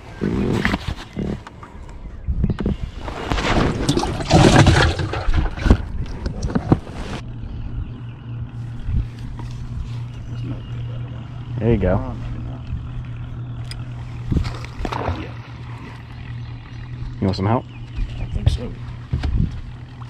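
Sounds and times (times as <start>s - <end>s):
low motor hum: 0.0s - 20.0s.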